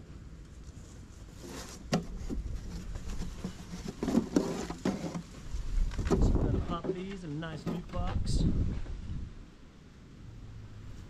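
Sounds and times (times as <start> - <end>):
rustling through long grass: 0.1 - 9.3
box set down with knock: 3.4 - 5.2.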